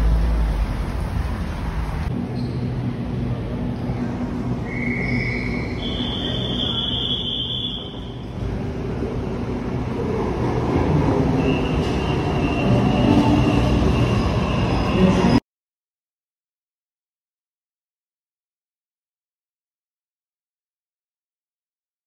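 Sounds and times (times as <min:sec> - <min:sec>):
high steady train whine: 0:00.0 - 0:15.4
train rumble: 0:00.0 - 0:15.4.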